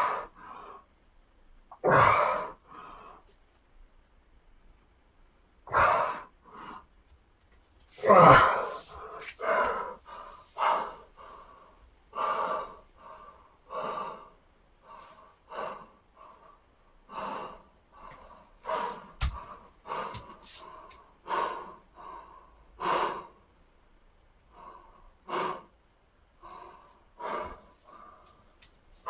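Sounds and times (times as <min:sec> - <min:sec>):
man breathing hard: 0:00.0 - 0:00.9, 0:07.9 - 0:23.6, 0:24.4 - 0:28.6.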